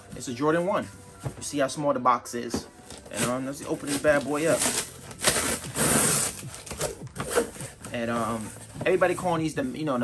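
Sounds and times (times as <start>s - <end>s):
cardboard scraping: 2.9s - 10.0s.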